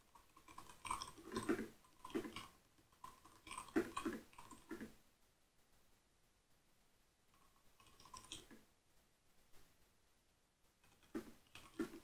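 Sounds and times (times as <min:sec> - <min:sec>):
faint computer keyboard typing: 0:00.0 - 0:05.0, 0:07.4 - 0:08.6.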